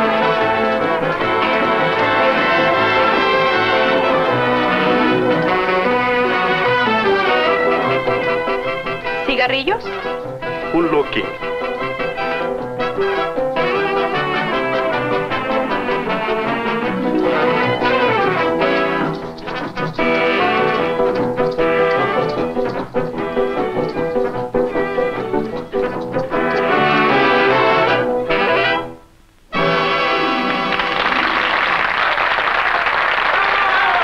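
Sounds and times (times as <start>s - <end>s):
brass-led dance band playing: 0.0s - 9.2s, 9.8s - 31.6s.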